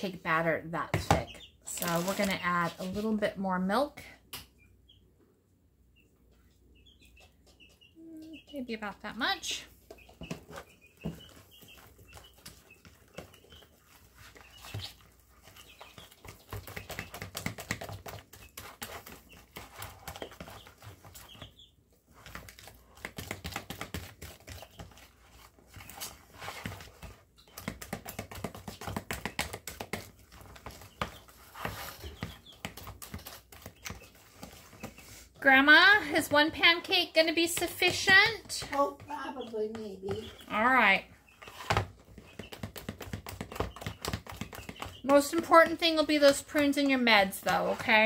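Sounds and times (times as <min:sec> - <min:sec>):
fork stirring thick batter: 0:09.8 - 0:48.0.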